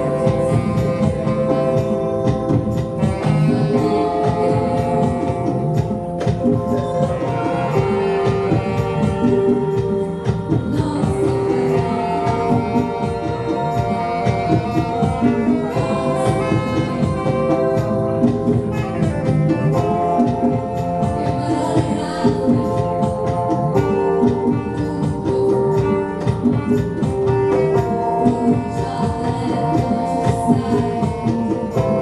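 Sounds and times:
live band playing: 0:00.0 - 0:32.0
percussion strikes: 0:00.0 - 0:32.0.

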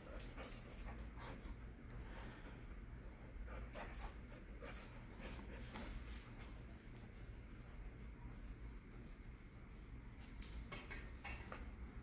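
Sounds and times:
dog panting: 0:00.0 - 0:06.4.

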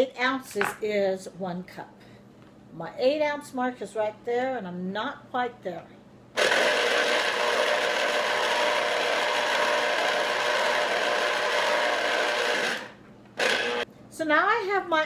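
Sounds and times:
electric juicer motor whirring: 0:06.4 - 0:13.9.

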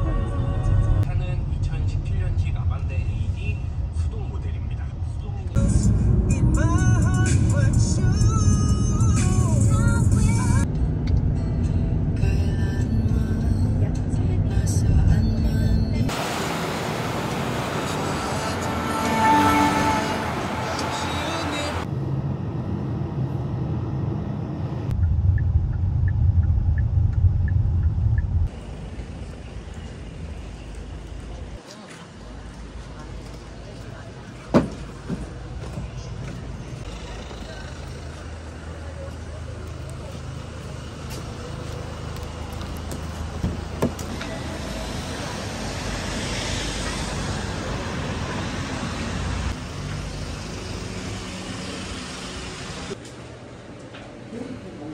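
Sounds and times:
car road rumble: 0:00.0 - 0:51.3
pop music with singing: 0:05.6 - 0:10.7, 0:12.2 - 0:16.1, 0:20.6 - 0:21.9.

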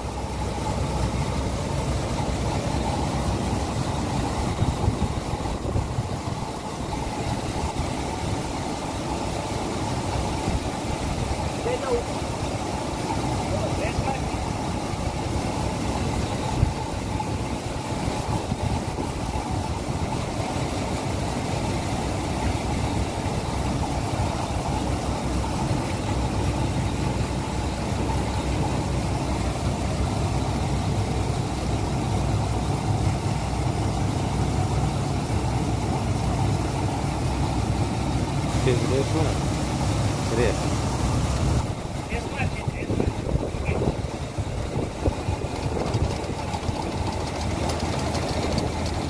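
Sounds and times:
harvester engine droning: 0:00.0 - 0:49.0.

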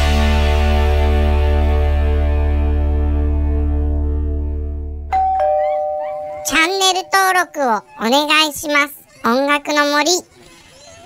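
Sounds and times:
music with deep bass chord: 0:00.0 - 0:05.1
two-note ding-dong chime: 0:05.1 - 0:07.3.

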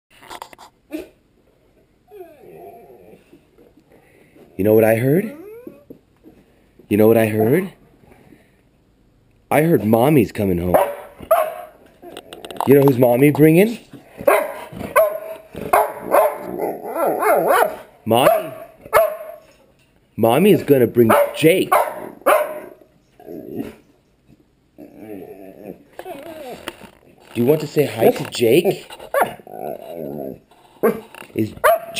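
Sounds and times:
dog whining: 0:02.0 - 0:03.4, 0:05.1 - 0:06.0, 0:14.8 - 0:17.8, 0:24.8 - 0:26.9
dog yowling: 0:05.2 - 0:06.0, 0:14.3 - 0:19.3
dog barking: 0:10.7 - 0:11.8, 0:14.2 - 0:19.4, 0:21.1 - 0:22.8, 0:29.2 - 0:29.4, 0:30.8 - 0:31.0, 0:31.6 - 0:31.9.

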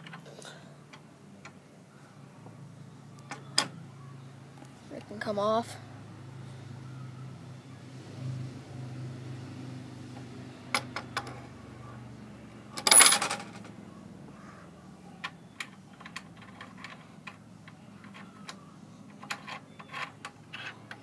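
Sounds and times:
metal clinking and clattering: 0:12.8 - 0:13.7.

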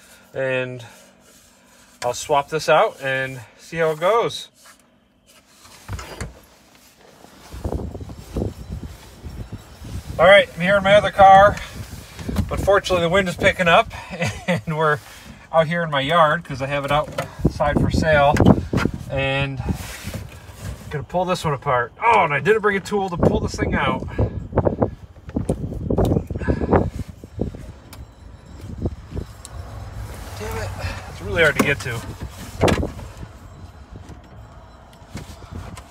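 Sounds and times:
wind buffeting microphone: 0:07.4 - 0:14.0, 0:17.3 - 0:20.5, 0:23.1 - 0:35.9.

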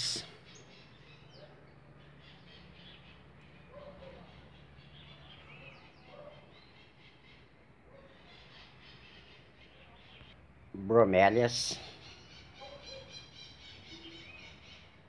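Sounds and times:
faint bird chirps: 0:11.8 - 0:15.0.

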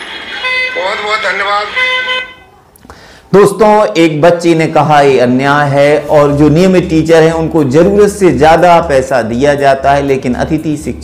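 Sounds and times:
vehicle horn tooting: 0:00.3 - 0:02.6.

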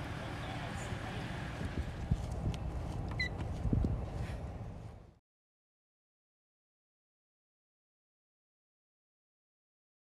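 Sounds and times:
footsteps on pavement: 0:01.8 - 0:05.2.

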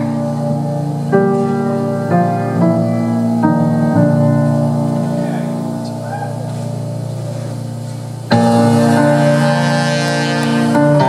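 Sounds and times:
faint crowd voices: 0:00.0 - 0:11.0
low keyboard chord: 0:00.0 - 0:11.0.

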